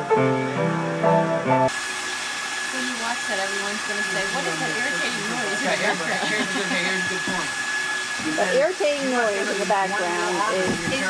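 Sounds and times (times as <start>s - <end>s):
upright piano chords: 0.0s - 1.7s
whirring noise with high whine: 1.7s - 11.0s.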